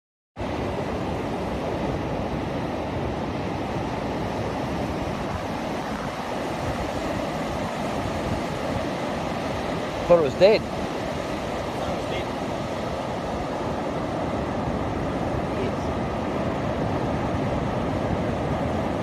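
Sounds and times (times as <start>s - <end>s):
ocean surf on sandy beach: 0.4s - 19.0s
wind buffeting microphone: 0.4s - 19.0s.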